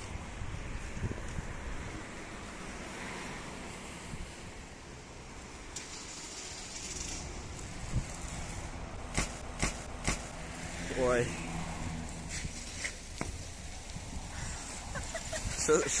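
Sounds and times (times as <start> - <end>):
wind buffeting microphone: 0.0 - 2.2, 7.3 - 9.6, 12.1 - 16.0
sharp bike clacks: 9.1 - 10.3.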